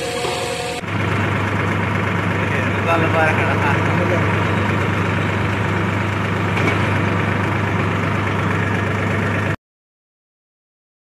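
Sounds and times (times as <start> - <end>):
tractor diesel engine idling: 0.0 - 9.6.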